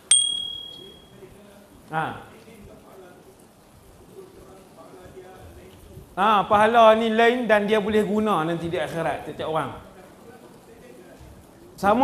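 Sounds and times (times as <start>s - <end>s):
bright bell ding: 0.0s - 1.1s.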